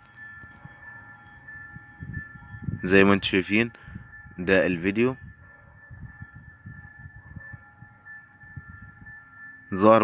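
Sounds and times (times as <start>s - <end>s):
thin high-pitched whine: 0.0s - 10.0s.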